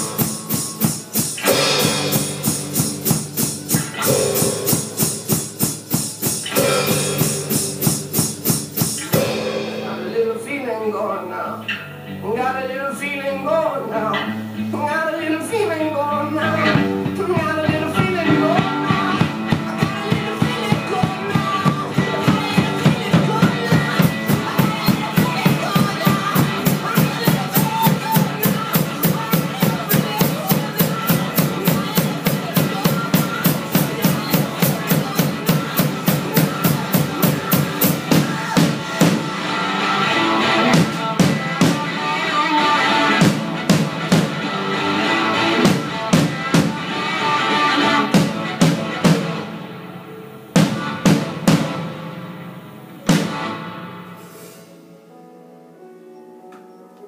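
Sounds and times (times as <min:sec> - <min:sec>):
drum kit playing: 0:00.0 - 0:10.8, 0:16.5 - 0:55.0
recorded rock song: 0:00.0 - 0:56.5.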